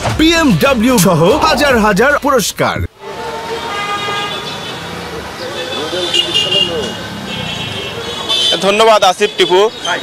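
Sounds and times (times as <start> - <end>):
traffic hubbub: 0.0 - 10.0
vehicle horns: 3.0 - 10.0.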